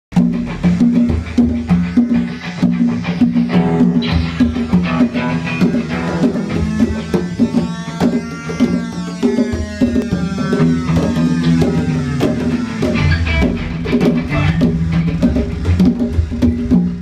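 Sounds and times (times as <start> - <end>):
congas: 0.1 - 17.0
electronic drum hits: 0.1 - 17.0
guitar strumming chords: 0.2 - 16.6.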